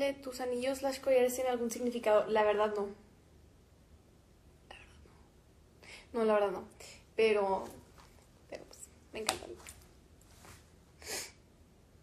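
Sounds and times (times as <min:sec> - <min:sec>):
faint breath: 0:05.8 - 0:06.2.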